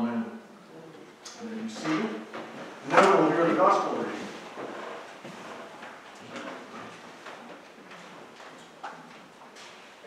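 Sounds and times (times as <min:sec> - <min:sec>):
footsteps on wooden floor: 0:04.4 - 0:08.6.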